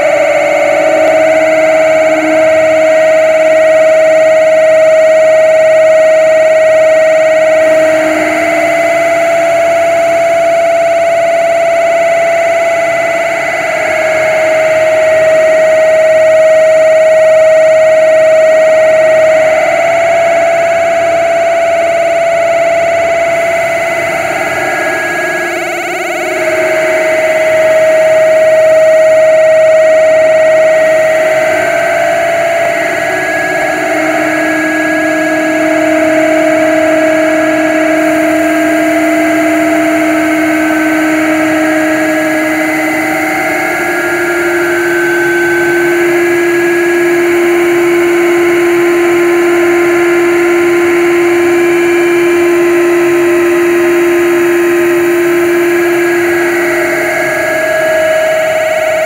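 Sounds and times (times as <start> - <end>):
long droning tones: 0.0 - 59.0
wall of distorted noise: 0.0 - 59.0.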